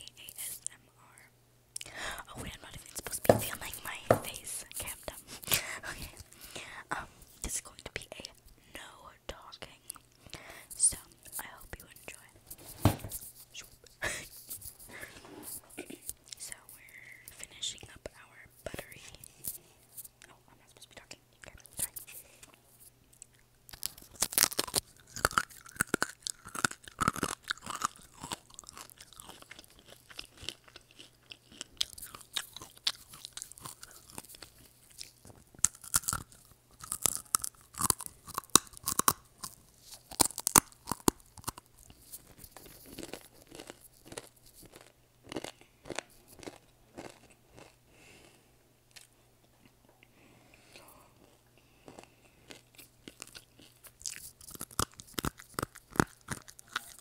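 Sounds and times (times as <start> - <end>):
crunching and chewing: 21.7 - 57.0.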